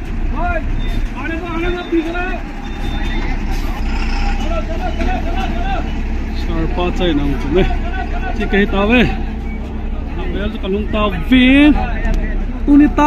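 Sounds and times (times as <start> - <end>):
bus engine idling: 0.0 - 13.0
people talking: 0.3 - 13.0.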